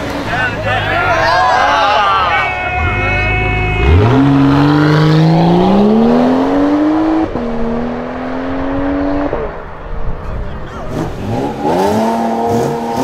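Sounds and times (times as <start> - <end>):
car engine accelerating: 0.0 - 13.0.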